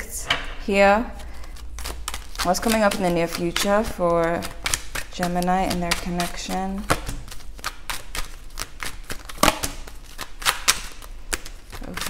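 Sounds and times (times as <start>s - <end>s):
cards being shuffled: 1.2s - 12.0s.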